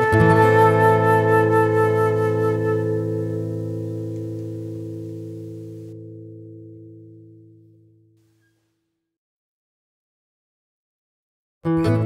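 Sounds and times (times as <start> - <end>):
fingerpicked acoustic guitar: 0.0 - 8.7, 11.6 - 12.0.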